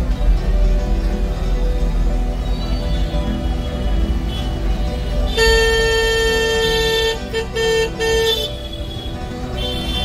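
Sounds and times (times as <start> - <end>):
background music: 0.0 - 10.0
vehicle horn honking: 5.3 - 10.0.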